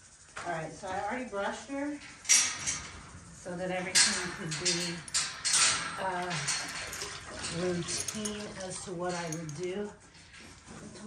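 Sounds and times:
woman talking: 0.4 - 2.0, 3.4 - 5.1, 6.0 - 6.6, 7.5 - 10.0
clattering noise: 1.9 - 10.6.

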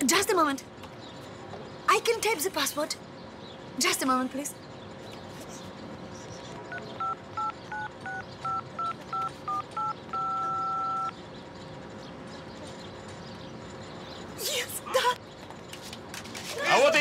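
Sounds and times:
phone keypad dialling tones: 7.0 - 11.1.

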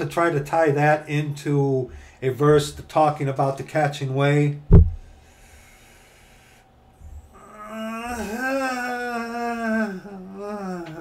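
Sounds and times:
low room rumble: 0.0 - 11.0
faint breath: 1.9 - 2.2, 5.0 - 7.4.

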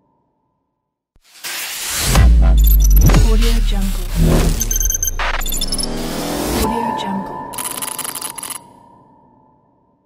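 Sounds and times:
high electronic tone: 1.8 - 6.8.

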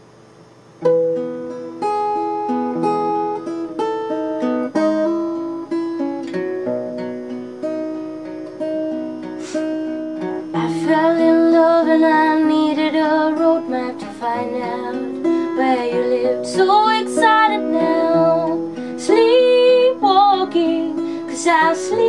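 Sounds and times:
acoustic guitar picking: 0.7 - 22.0
woman singing: 10.6 - 22.0.

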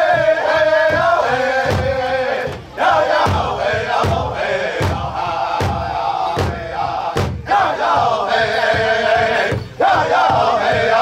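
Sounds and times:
large drum beating slowly: 0.0 - 11.0
men singing in unison: 0.0 - 11.0.

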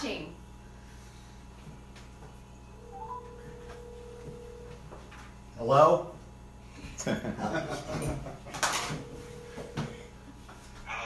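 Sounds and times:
telephone ringback tone: 2.8 - 4.9, 8.6 - 10.2.

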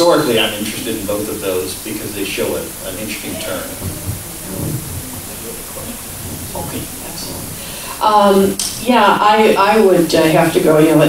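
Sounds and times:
background hiss: 0.0 - 11.0
microphone handling thumps: 3.2 - 8.5.

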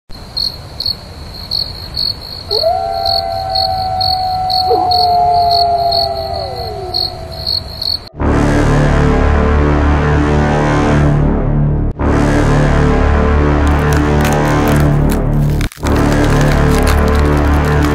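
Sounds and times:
crickets chirping: 0.1 - 8.1
lower wolf howl: 2.5 - 8.1
wolf howling: 2.5 - 8.1, 16.2 - 17.9
dark low horror music: 2.6 - 17.9.

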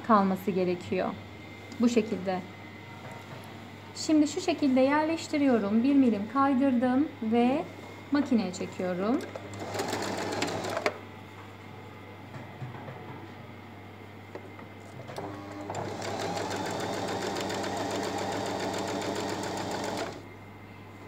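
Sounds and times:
electric sewing machine stitching: 9.5 - 11.0, 15.1 - 20.2.

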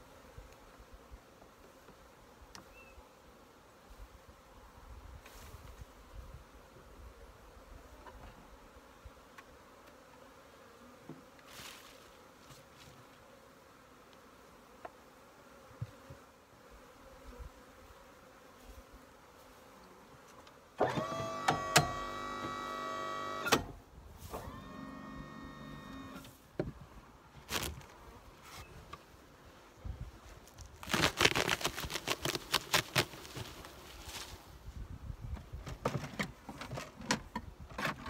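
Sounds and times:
electric hoist motor whine: 20.8 - 23.7, 24.3 - 26.3.

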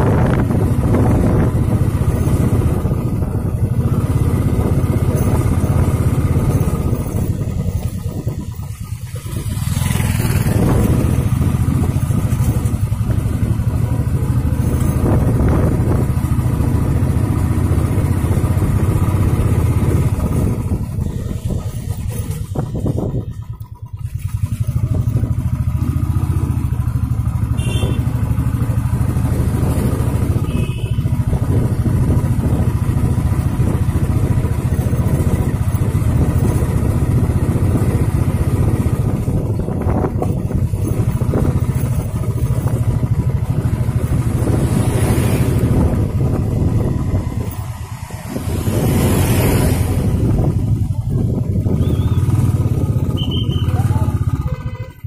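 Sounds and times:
vehicle engine and tyre rumble: 0.0 - 55.0.

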